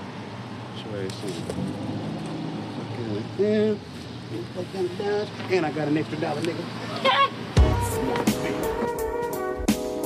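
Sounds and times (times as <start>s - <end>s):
low traffic or machinery hum: 0.0s - 8.9s.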